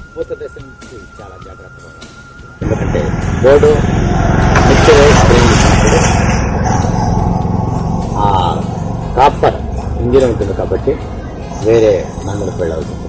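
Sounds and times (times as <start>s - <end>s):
small engine running: 2.6s - 13.0s.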